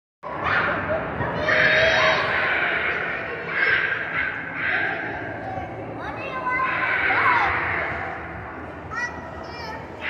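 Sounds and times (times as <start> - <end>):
children's chatter: 0.2 - 10.0.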